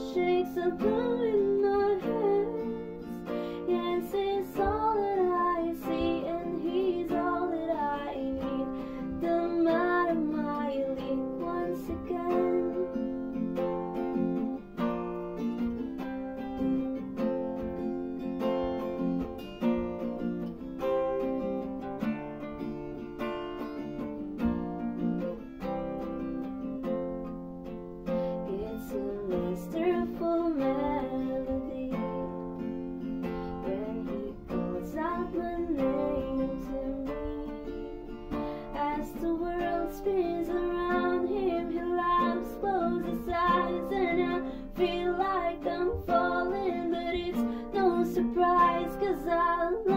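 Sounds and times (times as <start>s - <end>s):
acoustic guitar playing: 0.0s - 49.9s.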